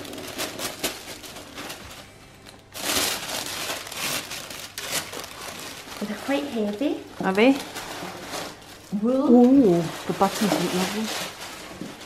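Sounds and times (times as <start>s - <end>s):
tissue paper rustling: 0.0s - 12.0s.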